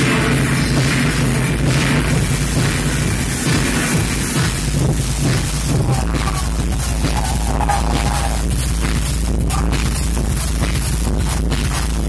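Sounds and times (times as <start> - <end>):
deep low bass drone: 0.0 - 12.0
hard techno music: 0.0 - 12.0.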